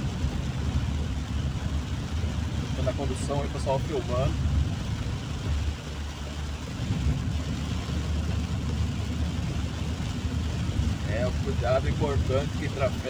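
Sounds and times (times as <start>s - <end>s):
car engine and tyre rumble: 0.0s - 13.0s
rain hissing on car roof: 0.0s - 13.0s.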